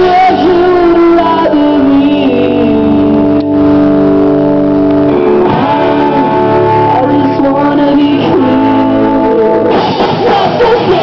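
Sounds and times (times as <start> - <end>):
person singing: 0.0 - 4.2, 5.1 - 11.0
drums: 0.0 - 11.0
electric guitars: 0.0 - 11.0.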